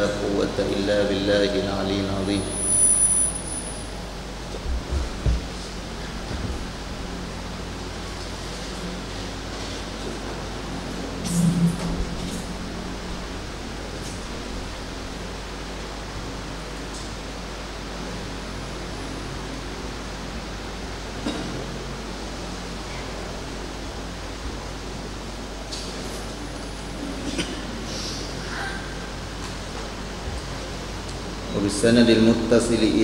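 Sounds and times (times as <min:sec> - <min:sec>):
steady hiss with low hum: 0:00.0 - 0:33.0.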